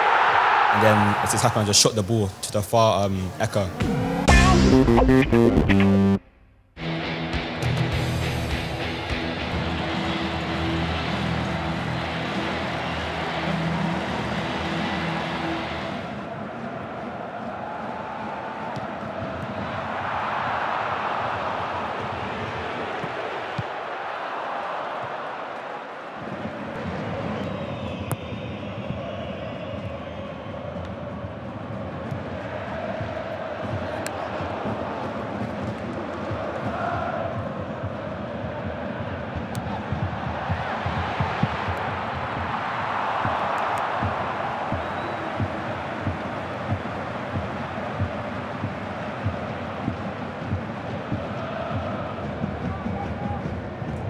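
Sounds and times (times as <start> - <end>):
music track: 3.7 - 16.0
crowd singing and chanting: 15.4 - 27.5, 30.1 - 54.0.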